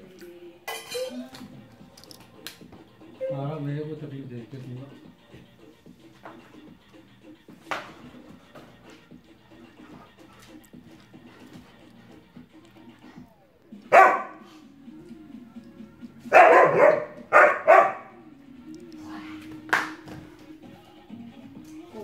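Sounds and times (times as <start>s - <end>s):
dog barking: 13.8s - 14.5s, 16.3s - 18.2s.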